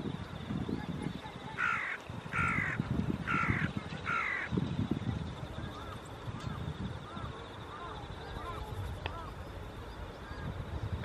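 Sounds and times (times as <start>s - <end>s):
bird calling: 1.0s - 4.6s, 5.5s - 10.6s.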